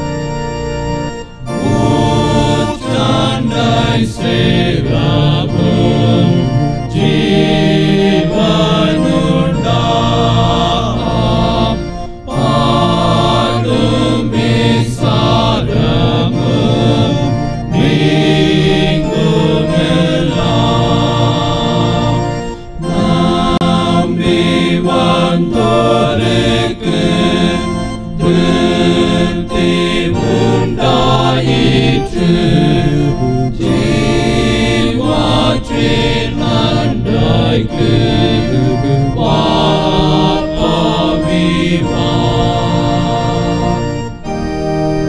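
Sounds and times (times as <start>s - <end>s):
male choir chanting: 1.0s - 44.9s.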